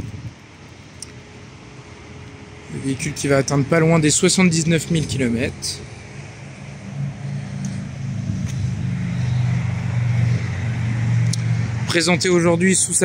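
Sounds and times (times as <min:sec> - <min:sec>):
vehicle engine humming: 0:00.0 - 0:13.0.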